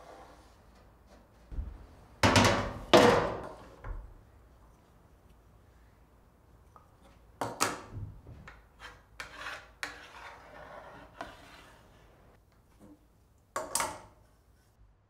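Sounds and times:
scratchy rubbing: 8.8 - 12.2.

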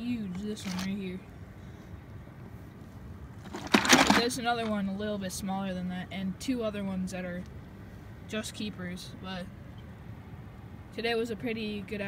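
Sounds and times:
noisy rustling or clatter: 3.4 - 4.7.

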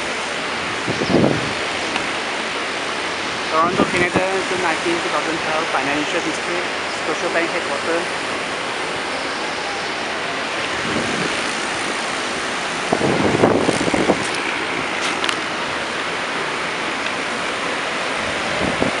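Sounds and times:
city traffic noise: 0.0 - 19.0.

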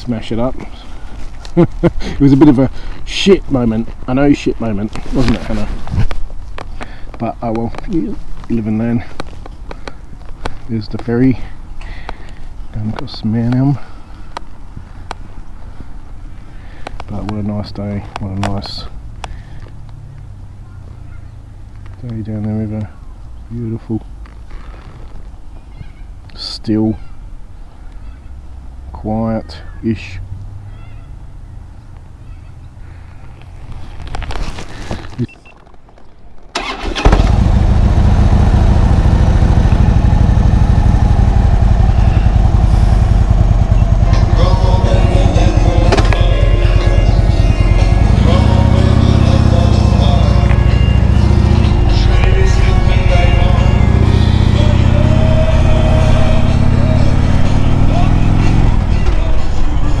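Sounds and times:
motorcycle engine revving: 36.6 - 60.0.

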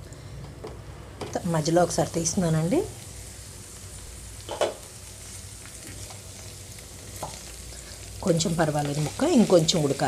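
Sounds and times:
vegetables sizzling in oil: 1.0 - 10.0.

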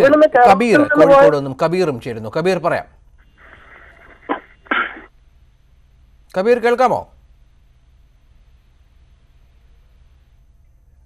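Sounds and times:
faint hiss: 2.0 - 11.0
breathy bursts over telephone: 3.3 - 5.1.

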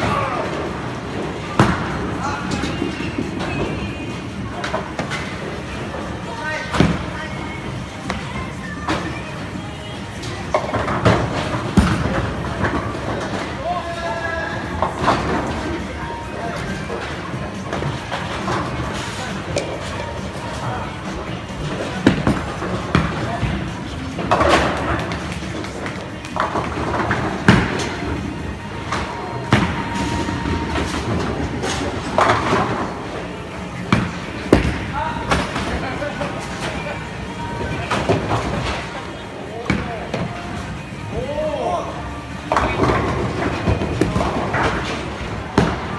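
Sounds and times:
bowling balls crashing into pins: 10.6 - 13.6, 42.5 - 45.9
balls rolling on lanes: 14.5 - 39.4.

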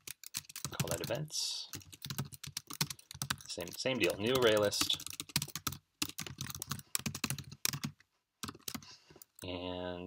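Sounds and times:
typing on computer keyboard: 0.0 - 9.4.

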